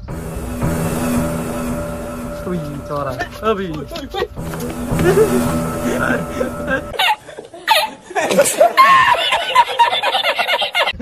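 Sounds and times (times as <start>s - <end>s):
low repeating note: 0.0s - 7.1s
background music sustained tones: 0.0s - 7.3s.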